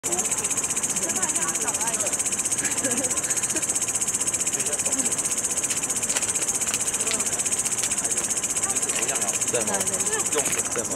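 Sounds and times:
faint people talking: 0.0s - 10.9s
night insects trilling: 0.0s - 10.9s.

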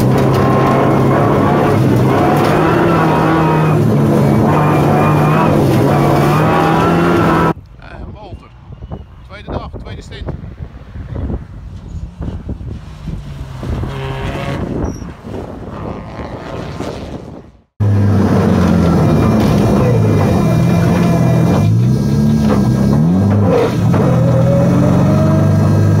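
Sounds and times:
car engine revving in cabin: 0.0s - 7.6s, 17.8s - 26.0s
wind on microphone: 7.5s - 17.7s.

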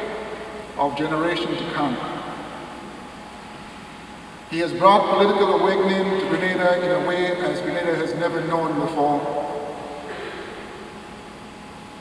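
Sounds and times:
man's voice: 0.8s - 2.2s, 4.5s - 9.4s.

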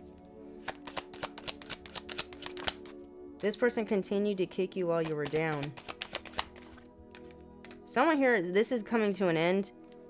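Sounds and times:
soft background music: 0.0s - 10.0s
cards clicking: 0.6s - 3.0s, 5.0s - 7.9s.

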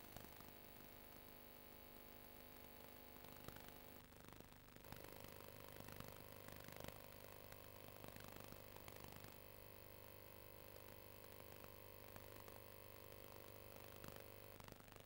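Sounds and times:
faint hum and hiss: 0.0s - 15.0s.

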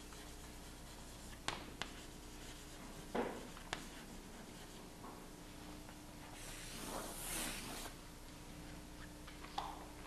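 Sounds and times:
chalk tapping on board: 0.0s - 4.8s
chalk strokes on chalkboard: 0.0s - 5.0s, 6.3s - 8.0s.

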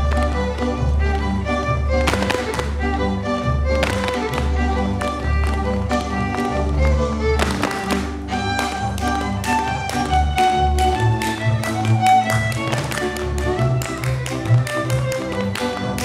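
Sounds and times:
boots stamping on stage: 0.0s - 16.0s
folk dance music with violin: 0.0s - 16.0s.

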